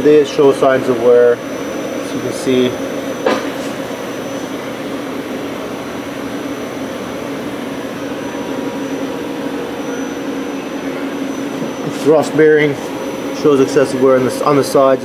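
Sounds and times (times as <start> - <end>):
mechanical hum: 0.0 - 15.0.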